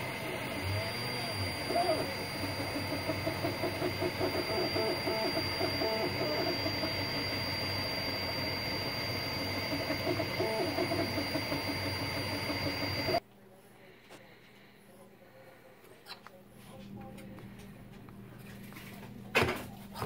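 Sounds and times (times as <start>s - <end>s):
stepper motors whining: 0.0s - 13.2s
cooling fans hissing: 0.0s - 20.0s.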